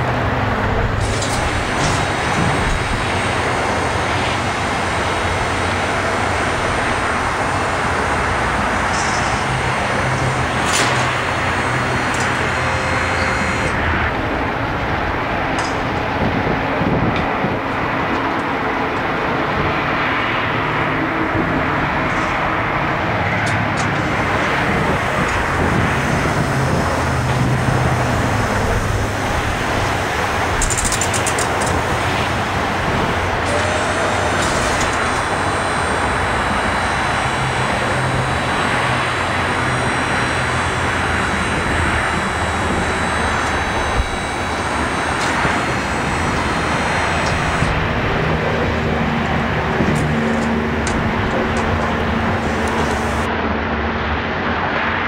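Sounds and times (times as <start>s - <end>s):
road traffic rushing: 0.0s - 55.0s.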